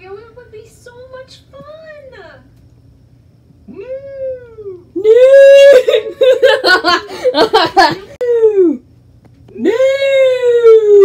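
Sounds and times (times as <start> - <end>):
person wailing: 3.7 - 7.0.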